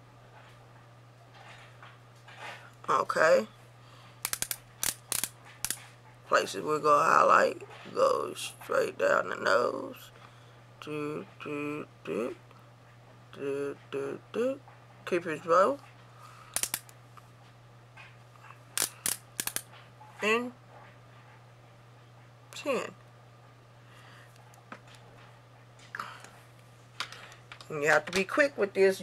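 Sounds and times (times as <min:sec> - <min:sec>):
low electrical hum: 0:00.0 - 0:29.0
highlighter pen ratcheting clicks: 0:04.3 - 0:05.8, 0:16.6 - 0:16.9, 0:18.8 - 0:19.6.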